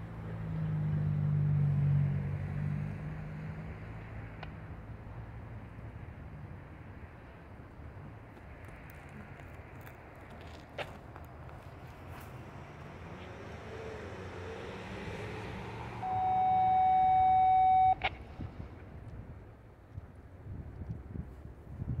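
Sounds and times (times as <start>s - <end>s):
loud steady beep: 16.0s - 18.1s.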